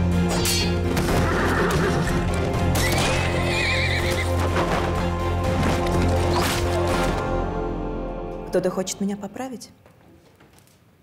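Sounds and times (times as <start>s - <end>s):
dramatic trailer music: 0.0s - 9.6s
horse neighing: 1.1s - 4.4s.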